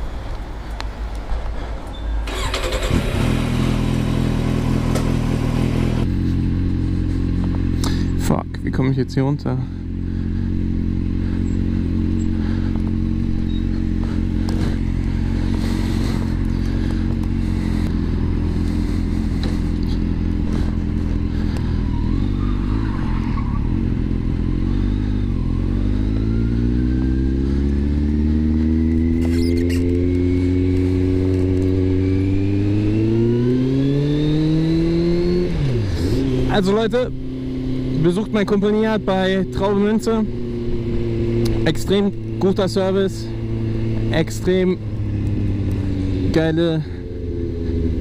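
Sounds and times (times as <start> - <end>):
motorcycle engine idling and accelerating: 0.0 - 48.0.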